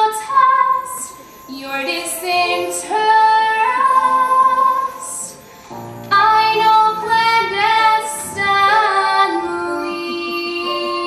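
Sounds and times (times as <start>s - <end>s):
girl singing: 0.0s - 5.4s, 6.1s - 11.0s
musical accompaniment: 0.0s - 11.0s.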